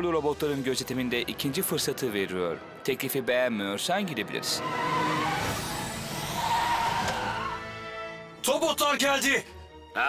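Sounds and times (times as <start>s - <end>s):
background music: 0.0s - 10.0s
tyres squealing: 4.5s - 7.7s.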